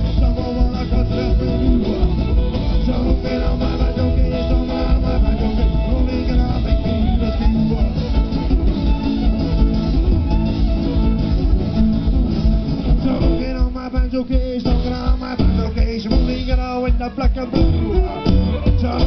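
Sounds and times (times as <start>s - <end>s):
live band playing: 0.0s - 19.0s.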